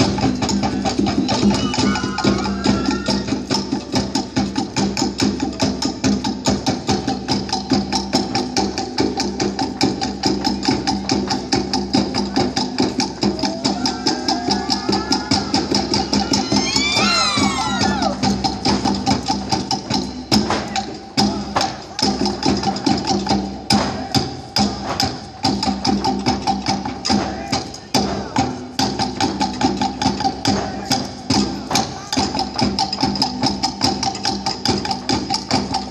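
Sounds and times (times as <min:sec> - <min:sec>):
dance music with wooden percussion: 0:00.0 - 0:35.9
high gliding cries: 0:13.4 - 0:18.3.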